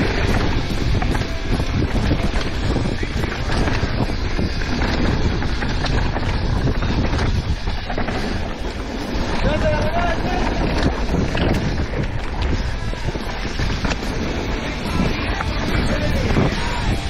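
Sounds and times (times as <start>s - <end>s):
mountain bike rumbling and rattling: 0.0s - 17.0s
wind buffeting microphone: 0.0s - 17.0s.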